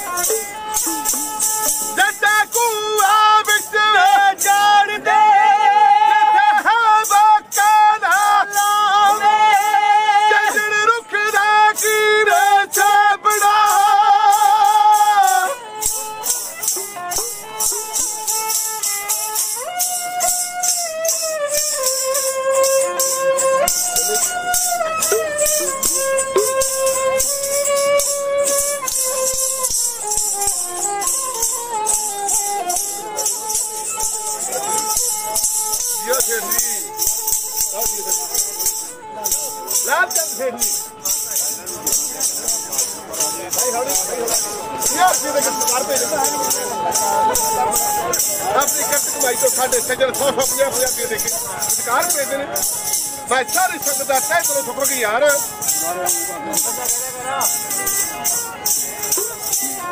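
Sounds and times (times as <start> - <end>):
bowed sarangi: 0.0 - 59.9
man singing: 0.2 - 15.8.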